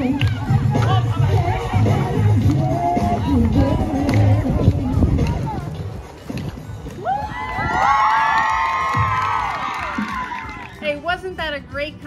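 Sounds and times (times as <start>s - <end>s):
children cheering and shouting: 7.0s - 10.8s
children whooping: 7.0s - 10.8s.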